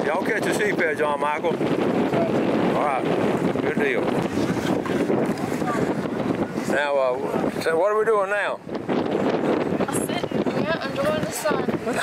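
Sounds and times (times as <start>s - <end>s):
wind buffeting microphone: 0.0s - 12.0s
faint voices: 2.1s - 8.7s.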